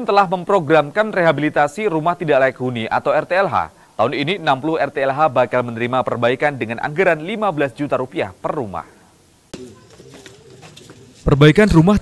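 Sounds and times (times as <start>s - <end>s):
faint ambient sound: 0.0s - 12.0s
low wavering bird call: 9.5s - 11.2s.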